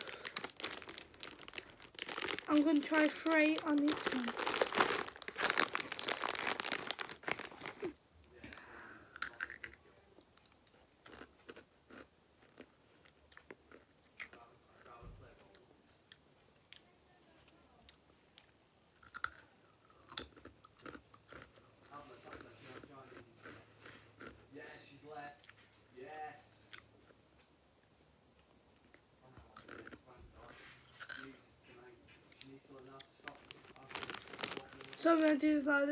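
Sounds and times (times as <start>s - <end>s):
chewing crunchy chips: 0.0s - 8.0s, 9.1s - 16.9s, 17.9s - 24.5s, 28.8s - 31.4s, 32.3s - 35.4s.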